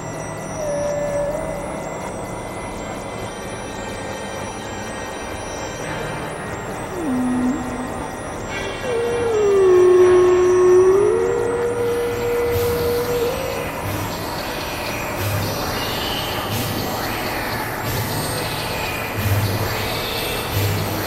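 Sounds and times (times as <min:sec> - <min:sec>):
synth tone sliding: 0:00.4 - 0:03.0, 0:06.8 - 0:14.6
soft low pulses: 0:06.7 - 0:14.3.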